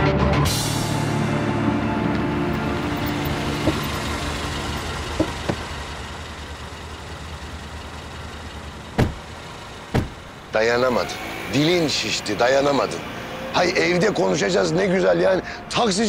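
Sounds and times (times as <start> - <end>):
car engine running low: 1.6 - 15.6
car door slamming: 3.5 - 4.2, 5.0 - 5.8, 8.9 - 10.3
knock: 9.0 - 9.2.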